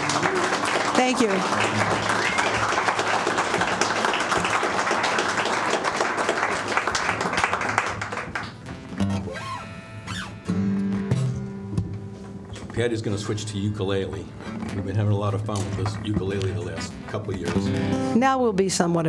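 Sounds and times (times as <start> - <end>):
audience applauding: 0.0 - 9.3, 14.9 - 16.9
acoustic guitar notes plucked: 8.6 - 18.3.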